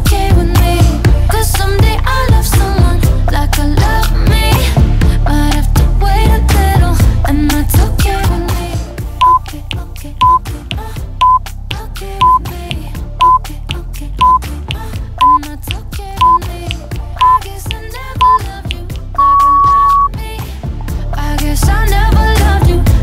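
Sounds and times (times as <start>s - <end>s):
pop music: 0.0s - 23.0s
interval timer beeping: 9.2s - 9.5s, 10.2s - 10.4s, 11.2s - 11.4s, 12.2s - 12.5s, 13.2s - 13.5s, 14.2s - 14.4s, 15.2s - 15.5s, 16.2s - 16.5s, 17.2s - 20.1s.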